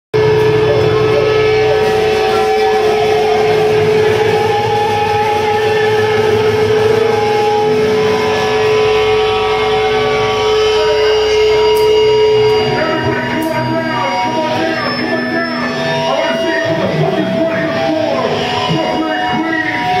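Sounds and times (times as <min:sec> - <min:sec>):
distorted amplifier hum: 0:00.1 - 0:20.0
electric guitar feedback tone: 0:00.1 - 0:20.0.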